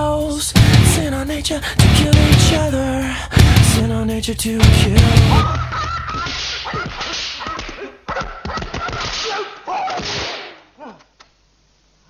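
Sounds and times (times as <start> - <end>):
punch smacks: 8.9 - 10.6.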